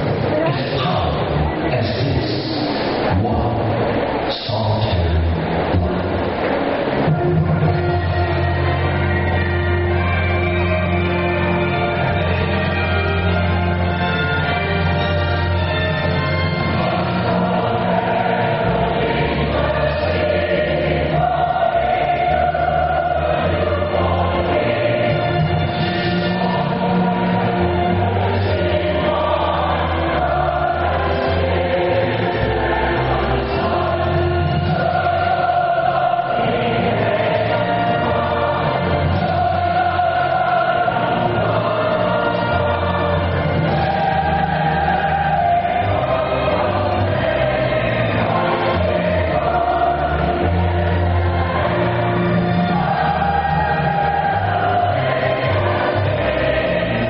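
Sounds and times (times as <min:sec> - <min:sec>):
choir singing held notes: 0:00.0 - 0:57.0.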